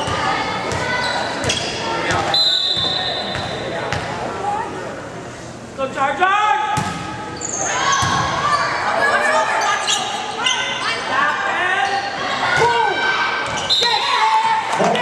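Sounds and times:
crowd voices: 0.0s - 15.0s
volleyball hits: 6.7s - 7.2s
shoe squeaks on court floor: 7.4s - 8.0s.

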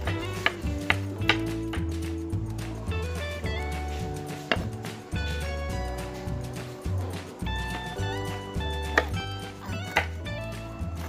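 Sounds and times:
background music: 0.0s - 11.0s
knife chopping on wooden board: 4.4s - 4.7s, 8.8s - 10.3s.

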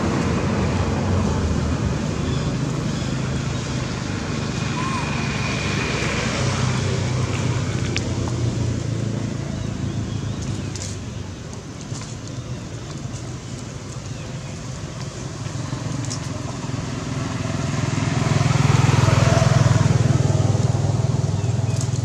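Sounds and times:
vehicle engine humming: 0.0s - 22.0s.

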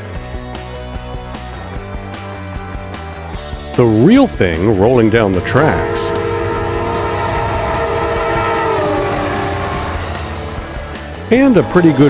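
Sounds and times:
passing train rumble: 3.7s - 12.0s
train air horn: 4.8s - 12.0s.

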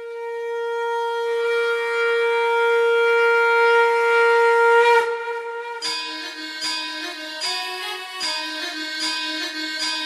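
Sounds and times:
conch shell blown: 0.0s - 10.0s.

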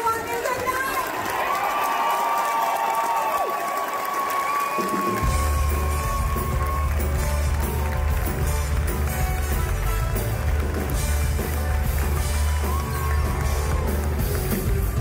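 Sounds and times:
audience cheering and applauding: 0.0s - 15.0s
rock band playing: 4.8s - 15.0s.

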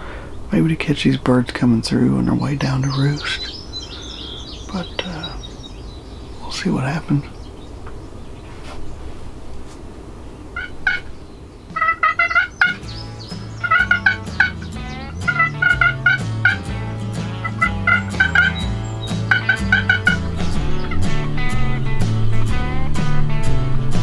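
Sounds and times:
turkey call yelps: 10.6s - 11.1s, 11.7s - 21.2s
background music with bass line: 11.7s - 24.0s.

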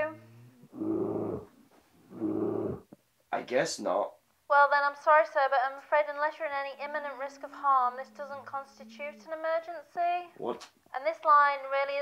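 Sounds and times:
bear growling: 0.0s - 2.9s.

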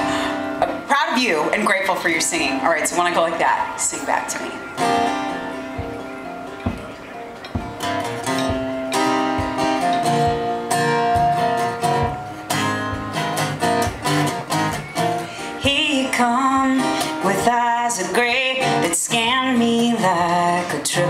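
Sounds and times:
acoustic guitar strumming: 0.0s - 21.0s
woman singing: 15.6s - 21.0s.

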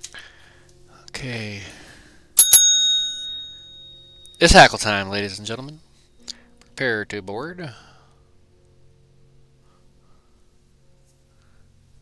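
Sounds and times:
small bell ringing: 2.4s - 4.7s.

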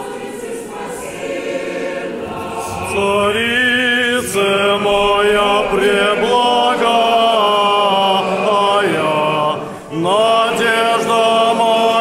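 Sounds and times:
group singing a hymn: 0.0s - 12.0s.

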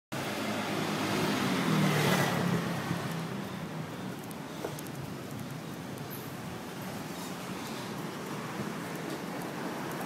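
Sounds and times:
motorcycle passing by: 0.2s - 3.7s.

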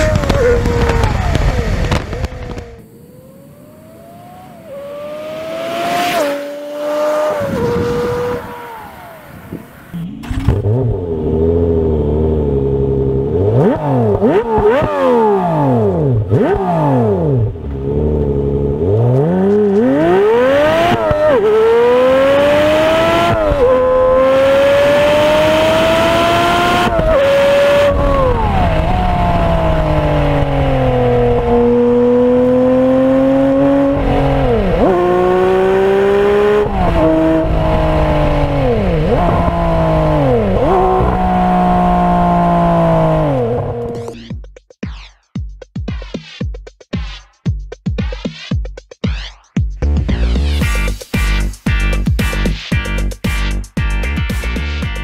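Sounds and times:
car engine revving and shifting gears: 0.0s - 44.3s.

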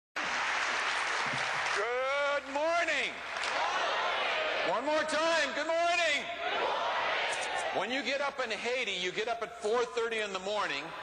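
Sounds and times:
audience applauding: 0.2s - 2.5s
man speaking: 7.8s - 11.0s.

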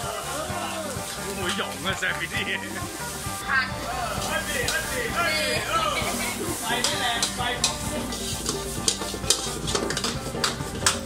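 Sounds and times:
food sizzling: 0.0s - 11.0s
metal spatula striking a wok: 4.2s - 5.0s, 6.5s - 11.0s.

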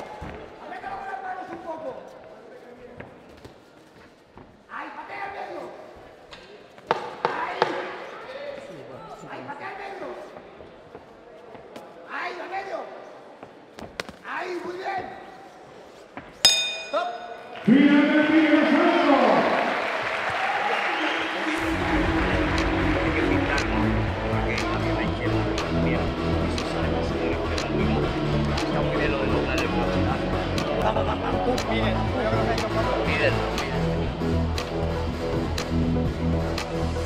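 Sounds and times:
boxing ring bell: 16.4s - 17.5s
loud music with steady beat: 21.6s - 28.4s.

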